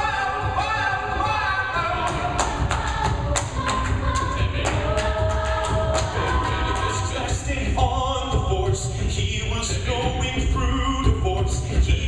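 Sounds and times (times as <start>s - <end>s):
a cappella group singing: 0.0s - 12.0s
beatboxed percussion hits: 0.0s - 12.0s.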